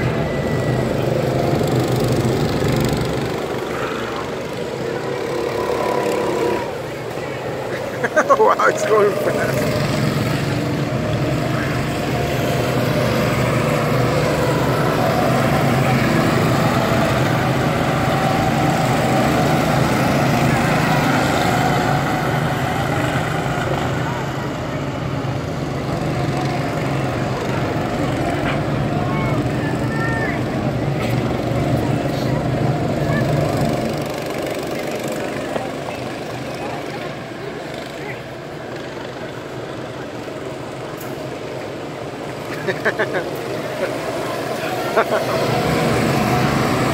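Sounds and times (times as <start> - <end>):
go-kart engines droning: 0.0 - 46.9.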